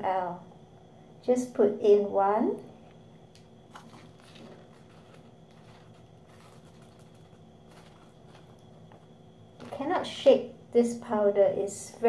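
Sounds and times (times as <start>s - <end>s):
plastic scoop clicks and rustles: 3.7s - 9.0s.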